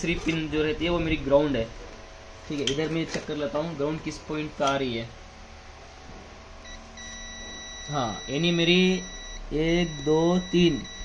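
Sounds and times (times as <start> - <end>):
multimeter continuity beep: 6.6 - 11.0.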